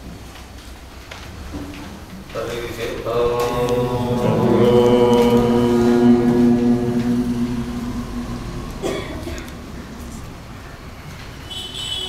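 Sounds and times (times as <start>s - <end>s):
man chanting: 2.3s - 10.4s.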